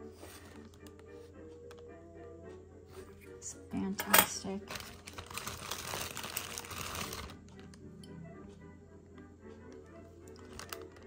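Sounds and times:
soft background music: 0.0 - 11.0
packing material rustling: 4.6 - 7.8, 10.3 - 11.0.

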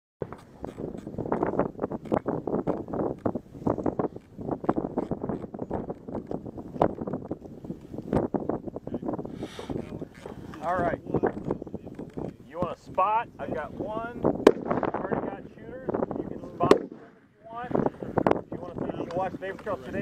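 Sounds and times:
wind rumbling on microphone: 0.2 - 20.0
indistinct voices talking: 8.8 - 20.0.

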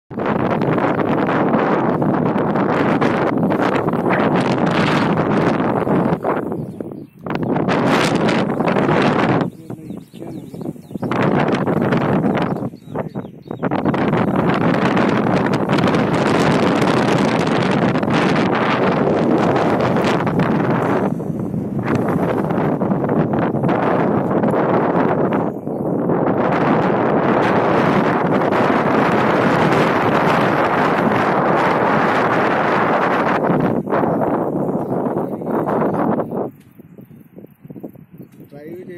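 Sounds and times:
wind gusting on microphone: 0.1 - 38.9.

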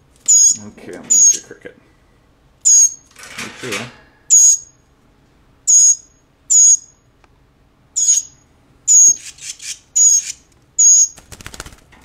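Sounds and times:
young songbird begging calls: 0.3 - 1.4, 2.6 - 3.0, 4.3 - 4.7, 5.7 - 6.9, 8.0 - 11.2.

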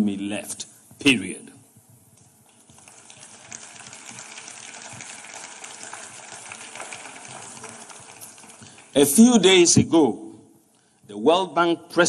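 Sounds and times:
audience applauding: 2.5 - 9.6.

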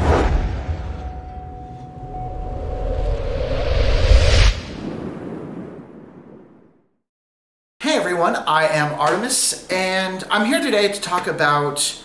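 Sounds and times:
low rumbling drone: 0.0 - 6.4
swooshes: 0.0 - 6.8
steady held tone: 0.9 - 4.5.

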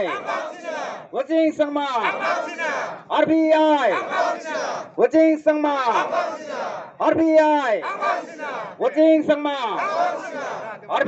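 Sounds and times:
crowd of men chanting: 0.0 - 1.2, 2.0 - 3.1, 3.7 - 5.0, 5.9 - 7.0, 7.7 - 9.0, 9.7 - 11.0
man shouting through loudspeaker: 0.0 - 11.0.

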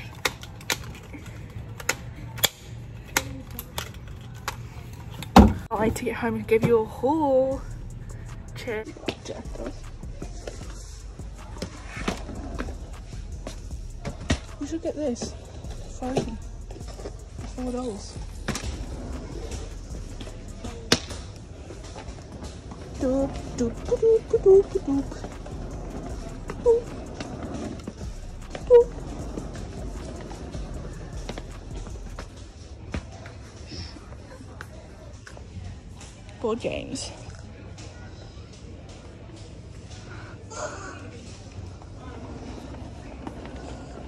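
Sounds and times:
steady low hum: 0.0 - 32.8
shopping basket wheels rolling on tiles: 20.6 - 32.3, 41.7 - 44.0.

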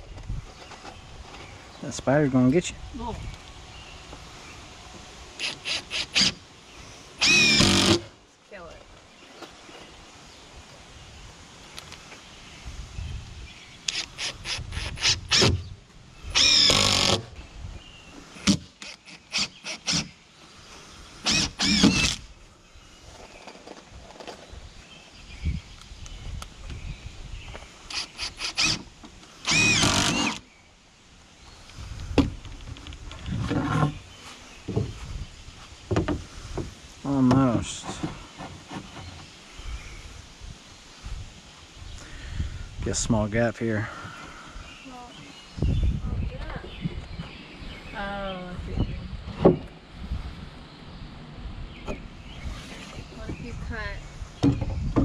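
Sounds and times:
cordless drill driving screws: 5.4 - 6.4, 7.2 - 8.1, 13.9 - 15.6, 16.3 - 17.2, 18.4 - 20.1, 21.2 - 22.2, 27.9 - 30.4.

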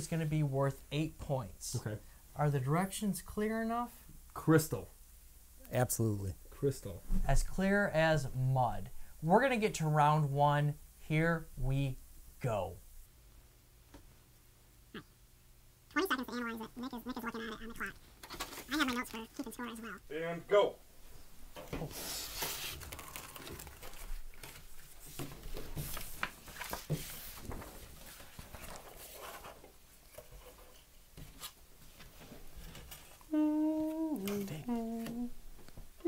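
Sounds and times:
person humming: 15.9 - 18.0, 33.3 - 35.5
person vocalizing short notes: 15.9 - 18.0, 18.7 - 20.1, 33.3 - 35.4
paper rustling and tapping: 22.4 - 30.6.

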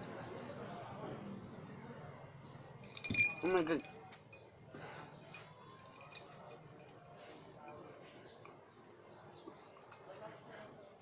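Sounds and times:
faint eating sounds: 0.0 - 11.0.

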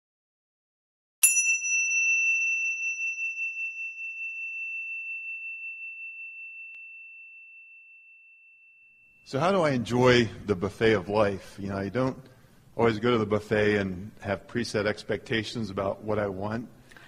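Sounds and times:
high-pitched chime ringing: 1.2 - 9.4.

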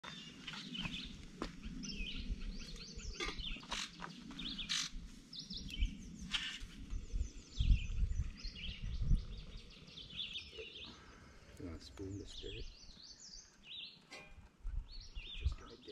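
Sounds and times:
songbirds chirping: 0.0 - 15.9.

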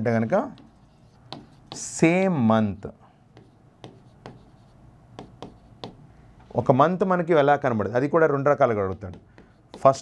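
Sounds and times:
marker pen writing on whiteboard: 0.1 - 6.1, 8.9 - 10.0
pen ticking on board: 3.4 - 4.5, 5.2 - 6.0, 9.0 - 10.0.

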